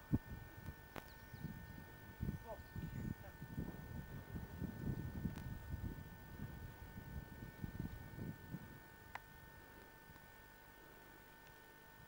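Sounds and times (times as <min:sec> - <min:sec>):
faint high hum: 0:00.0 - 0:12.0.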